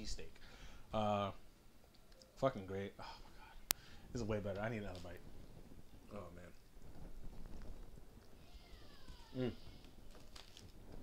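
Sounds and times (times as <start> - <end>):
man humming mmm: 9.4 - 9.6.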